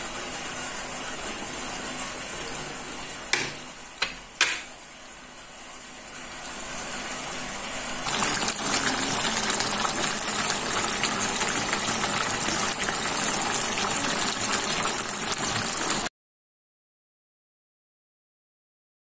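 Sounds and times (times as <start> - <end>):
stew bubbling in a pan: 8.0 - 16.1.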